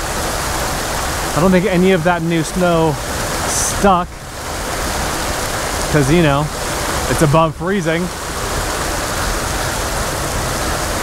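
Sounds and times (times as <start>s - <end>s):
creek water pouring over ledge: 0.0s - 11.0s.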